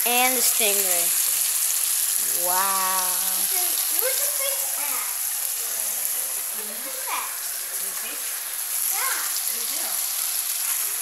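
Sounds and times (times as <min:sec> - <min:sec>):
fish sizzling in a pan: 0:00.0 - 0:11.0.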